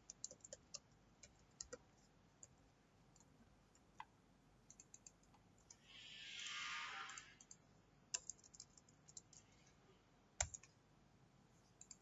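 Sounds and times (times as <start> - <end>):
soft hiss: 5.7 - 7.4.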